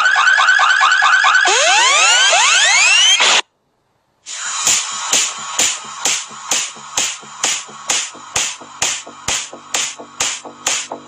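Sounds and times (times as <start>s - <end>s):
electronic tones sweeping upward: 1.5s - 3.4s, 4.3s - 11.0s
burst of noise: 4.3s - 11.0s.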